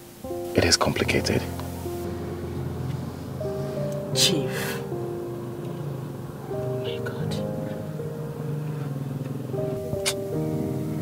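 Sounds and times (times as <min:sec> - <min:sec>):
film score sustained chords: 0:00.0 - 0:11.0.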